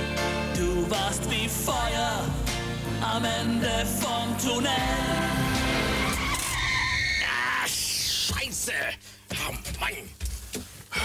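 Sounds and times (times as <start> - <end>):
sung ballad with backing music: 0.0 - 6.3.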